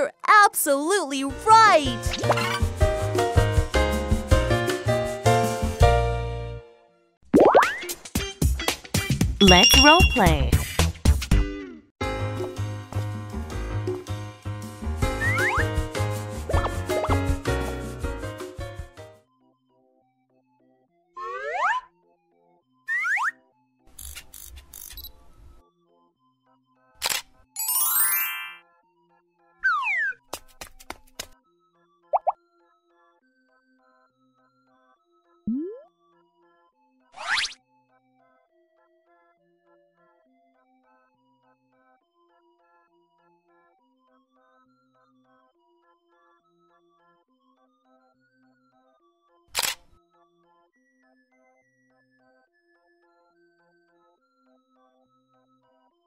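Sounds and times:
soft children's music: 0:00.0 - 0:10.8, 0:14.7 - 0:19.6, 0:27.6 - 0:29.2
rising cartoon sound effect: 0:21.2 - 0:21.8, 0:35.5 - 0:35.9
camera shutter sound effect: 0:27.0 - 0:27.4, 0:49.6 - 0:49.9.

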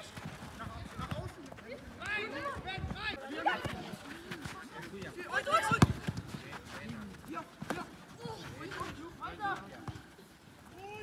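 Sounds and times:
football being kicked: 0:05.5 - 0:07.0.

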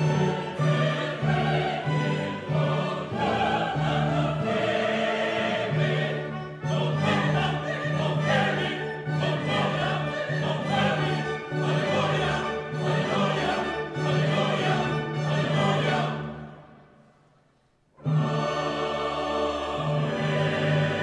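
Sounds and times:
mixed choir singing: 0:00.0 - 0:16.7, 0:18.0 - 0:21.0
symphony orchestra: 0:00.0 - 0:17.0, 0:18.0 - 0:21.0.

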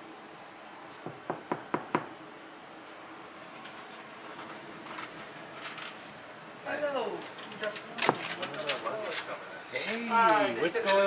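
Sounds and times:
knocks on wooden door: 0:01.1 - 0:02.1.

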